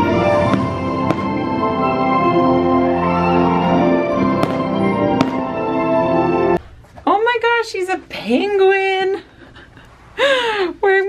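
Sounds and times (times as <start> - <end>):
fireworks bangs: 0.0 - 2.8, 4.1 - 6.7
music with long held notes: 0.0 - 6.6.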